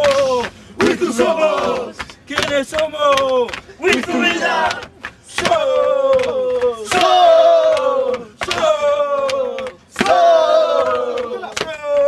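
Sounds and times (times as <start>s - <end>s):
group of voices shouting: 0.1s - 2.0s, 3.8s - 12.0s.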